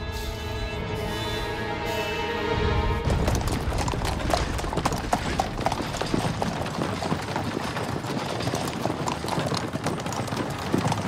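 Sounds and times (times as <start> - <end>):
horse hooves galloping on dirt: 3.0 - 11.0.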